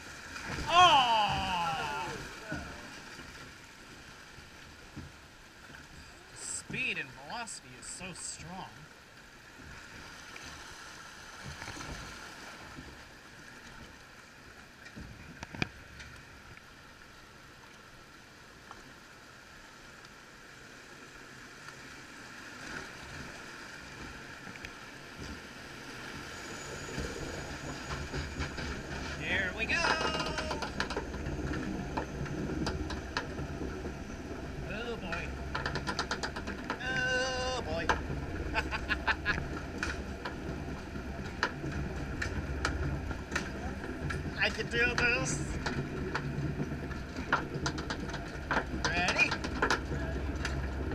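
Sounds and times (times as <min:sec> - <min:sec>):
water washing: 0:00.0 - 0:08.8, 0:22.5 - 0:50.9
lift hill rumble with clicking: 0:22.6 - 0:50.9.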